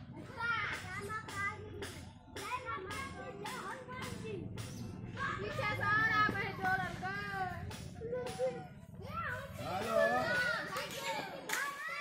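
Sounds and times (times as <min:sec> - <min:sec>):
excited voices chattering: 0:02.4 - 0:12.0.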